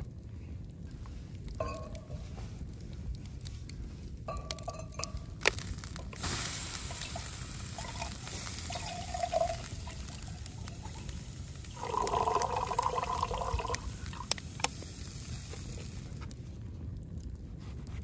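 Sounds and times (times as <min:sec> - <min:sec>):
water pouring into metal pitcher: 0:06.1 - 0:14.3.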